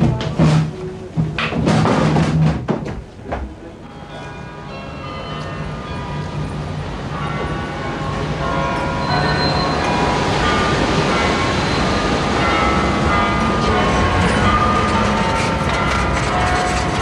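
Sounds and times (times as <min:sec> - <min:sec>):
street traffic rumbling: 0:03.2 - 0:17.0.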